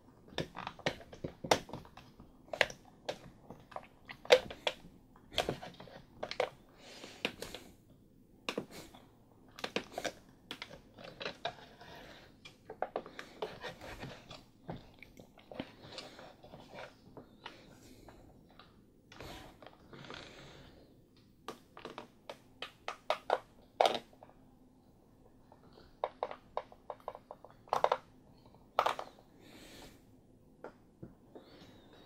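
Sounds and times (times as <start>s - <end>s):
plastic clatter: 26.0s - 28.1s.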